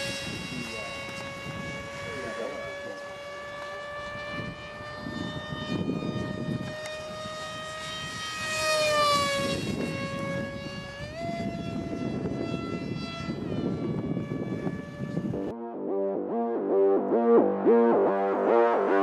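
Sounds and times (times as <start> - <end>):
model jet electric motor whining: 0.0 - 15.5.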